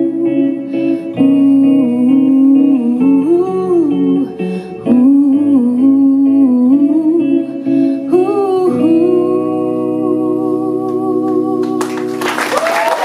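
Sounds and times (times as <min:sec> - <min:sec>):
woman singing: 0:00.0 - 0:12.8
electric guitars: 0:00.0 - 0:13.0.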